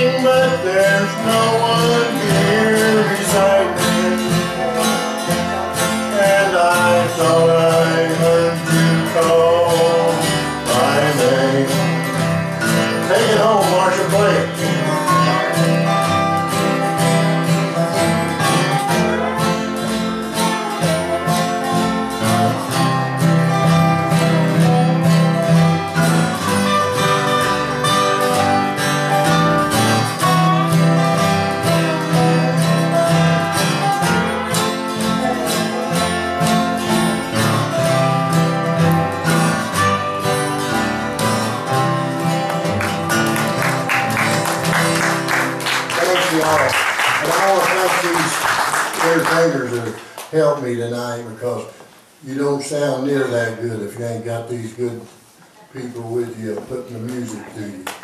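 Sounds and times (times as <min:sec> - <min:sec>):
country band instrumental: 0:00.0 - 0:58.0
gliding wavering guitar notes: 0:14.2 - 0:45.6.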